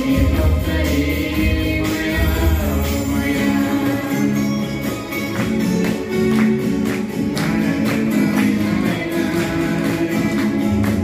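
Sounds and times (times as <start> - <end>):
students singing together: 0.0 - 4.4
backing track with steady beat: 0.0 - 11.0.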